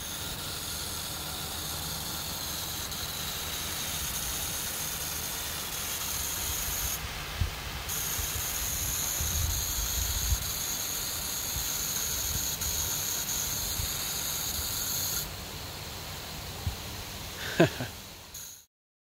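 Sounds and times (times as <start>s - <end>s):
sprinkler spraying water: 0.0s - 18.7s.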